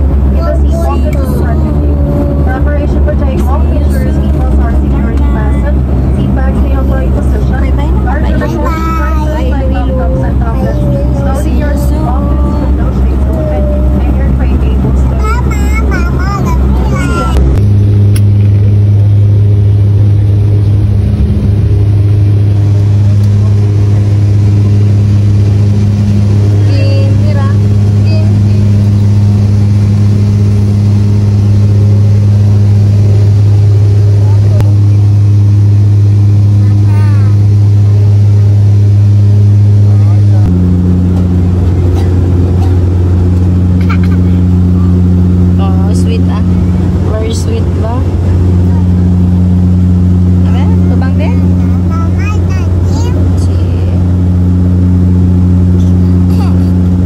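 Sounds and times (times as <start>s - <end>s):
propeller engines droning in cabin: 0.0s - 57.0s.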